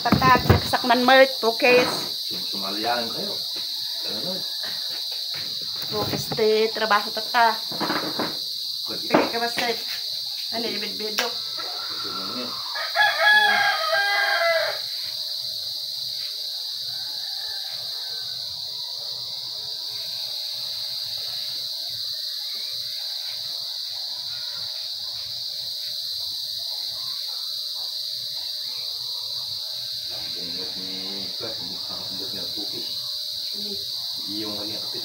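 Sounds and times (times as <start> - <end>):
high-pitched insect drone: 0.0 - 35.0
rooster crowing: 2.8 - 5.5, 11.3 - 20.4, 21.3 - 25.4.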